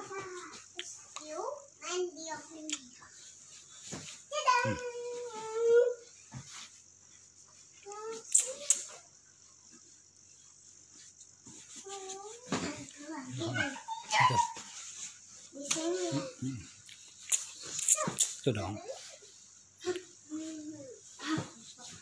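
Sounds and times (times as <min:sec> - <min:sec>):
voices: 0:04.3 - 0:06.1, 0:11.8 - 0:14.8
child's high-pitched calls: 0:13.2 - 0:14.6.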